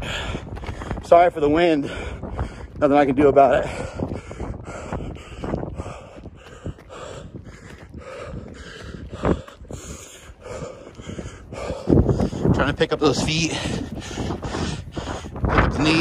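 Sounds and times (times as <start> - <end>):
person panting hard: 0.0 - 1.0, 1.6 - 16.0
running footfalls: 0.0 - 16.0
wind buffeting microphone: 0.0 - 16.0.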